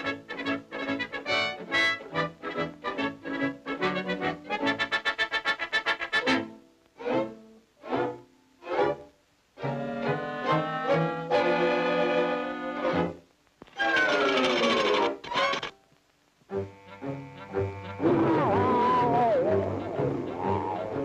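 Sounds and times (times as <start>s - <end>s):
orchestral cartoon music with brass: 0.0s - 9.0s, 9.6s - 13.2s.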